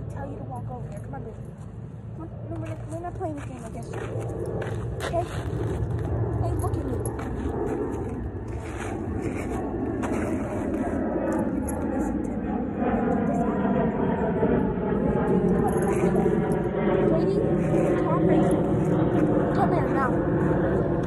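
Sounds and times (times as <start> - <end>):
engine drone passing by: 0.0 - 21.0.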